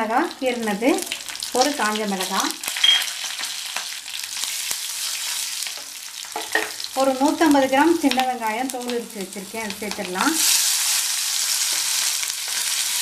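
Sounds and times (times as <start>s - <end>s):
frying hiss in oil: 0.0s - 13.0s.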